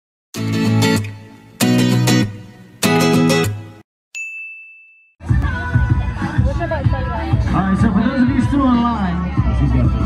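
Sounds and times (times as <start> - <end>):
music: 0.4 - 3.8, 5.2 - 10.0
bell-like ding: 4.1 - 5.2
crowd chatting: 5.2 - 10.0.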